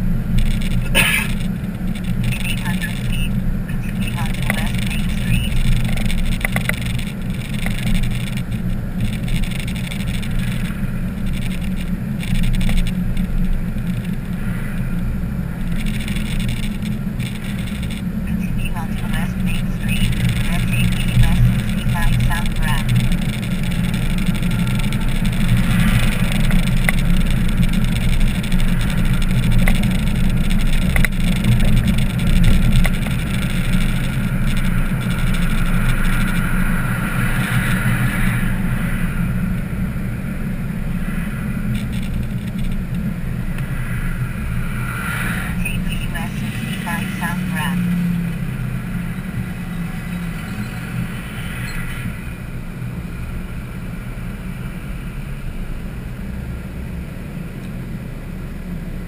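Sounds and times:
car engine and tyre noise: 0:00.0 - 0:59.0.

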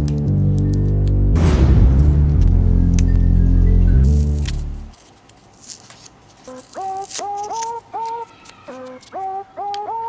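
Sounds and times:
paper rustling and clicks: 0:04.1 - 0:09.3.

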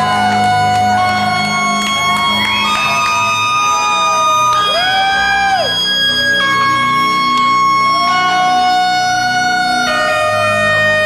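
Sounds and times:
held synth notes: 0:00.0 - 0:11.0
pulsing synth bass: 0:00.0 - 0:11.0.

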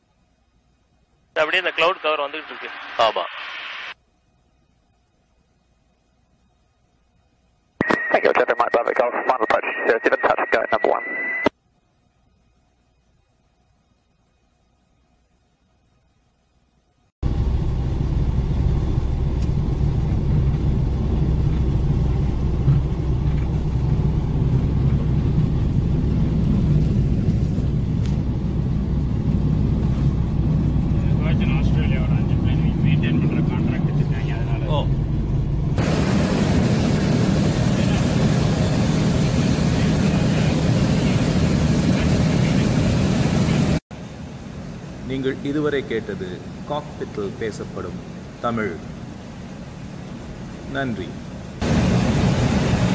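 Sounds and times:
light aircraft engine drone: 0:17.2 - 0:52.9.

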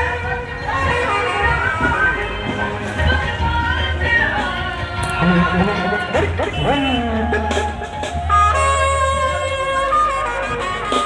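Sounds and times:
brass band playing: 0:05.2 - 0:11.0.

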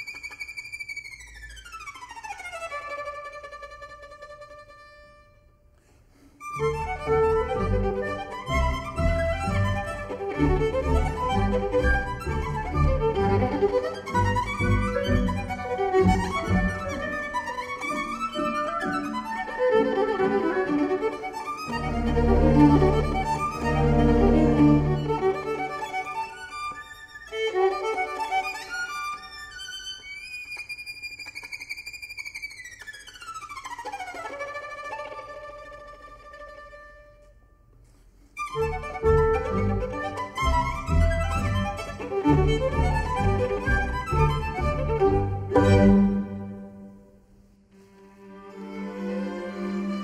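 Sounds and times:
solo violin: 0:00.0 - 0:05.7, 0:06.4 - 0:37.4, 0:38.4 - 0:47.1, 0:47.7 - 0:50.0
low strings: 0:06.5 - 0:19.2, 0:38.6 - 0:46.9
orchestra playing: 0:06.5 - 0:26.3, 0:38.6 - 0:47.0, 0:48.2 - 0:50.0.

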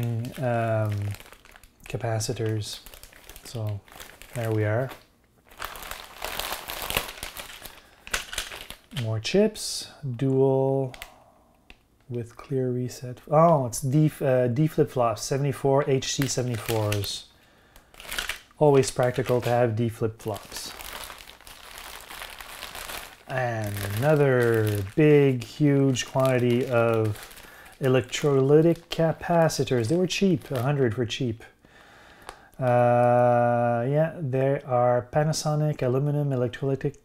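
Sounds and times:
plastic bags crinkling: 0:00.0 - 0:09.4, 0:15.9 - 0:31.0.

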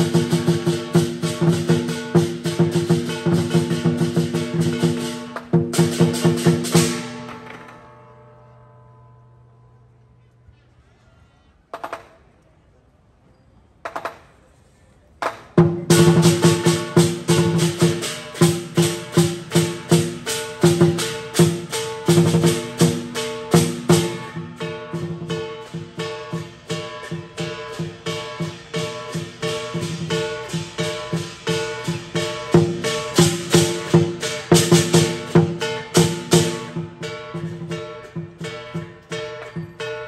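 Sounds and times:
percussion band driving beat: 0:00.0 - 0:07.8, 0:15.2 - 0:40.0
cymbal clashes: 0:00.0 - 0:09.8, 0:15.6 - 0:40.0.

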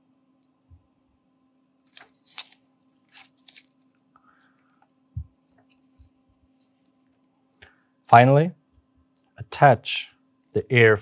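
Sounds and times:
faint hum: 0:00.0 - 0:11.0
plastic tubing rustling and clicking: 0:01.9 - 0:04.0.

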